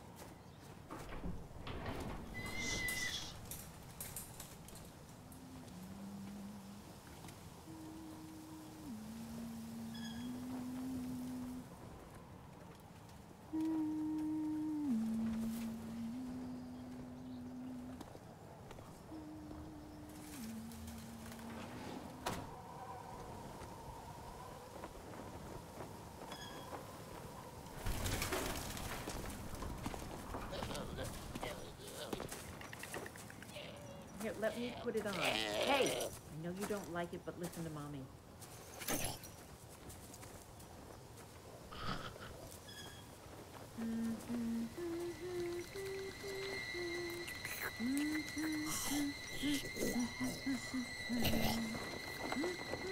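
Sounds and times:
person humming a slow tune: 0:05.1 - 0:12.1, 0:13.4 - 0:22.5, 0:43.6 - 0:52.9
rustling noise: 0:20.0 - 0:22.6.

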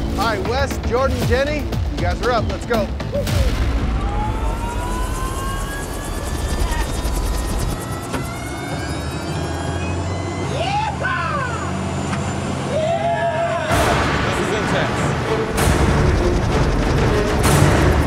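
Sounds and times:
rising whine: 0:03.6 - 0:13.7
helicopter running: 0:04.0 - 0:12.8, 0:13.7 - 0:18.0.

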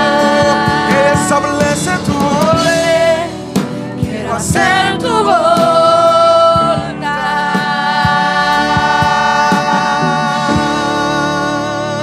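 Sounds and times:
keyboard: 0:00.0 - 0:12.0
voices singing together: 0:00.0 - 0:12.0.

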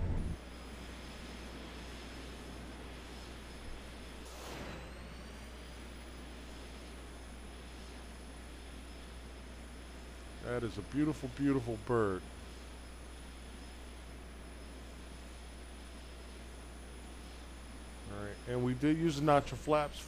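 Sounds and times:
jet engine rumble with whine: 0:00.0 - 0:20.0.

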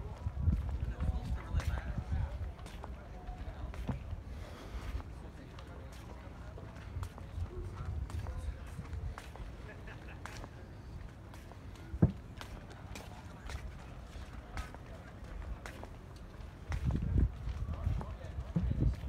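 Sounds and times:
footsteps on dock: 0:00.0 - 0:19.0.

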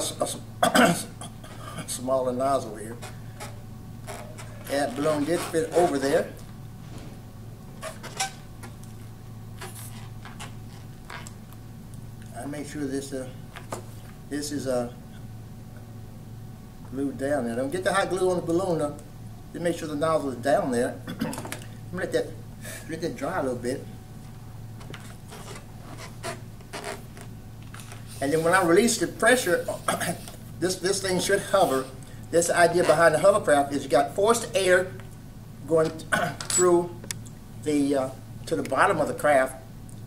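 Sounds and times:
steady low hum: 0:00.0 - 0:40.0
hands rubbing rubber balloon: 0:09.6 - 0:11.3.

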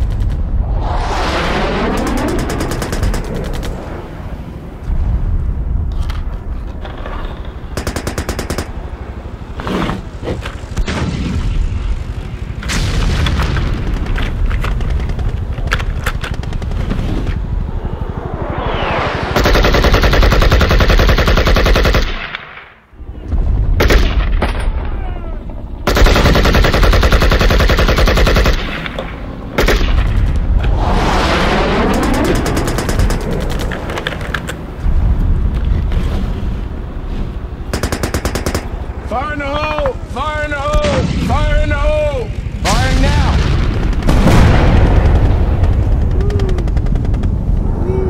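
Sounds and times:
machine-gun fire: 0:01.9 - 0:03.5, 0:07.8 - 0:08.8, 0:19.4 - 0:22.4, 0:25.8 - 0:29.0, 0:29.6 - 0:30.2, 0:31.8 - 0:33.7, 0:37.7 - 0:38.8
rifle fire: 0:07.8 - 0:08.8, 0:19.4 - 0:22.8, 0:23.8 - 0:24.8, 0:25.8 - 0:30.4, 0:37.7 - 0:38.8
explosion booms: 0:42.7 - 0:47.8.

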